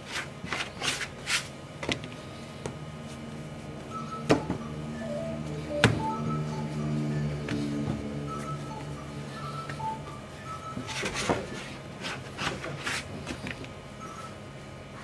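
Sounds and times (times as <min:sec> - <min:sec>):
dough rubbing on board: 0:00.0 - 0:01.6, 0:06.8 - 0:13.4
soft background music: 0:03.9 - 0:11.8.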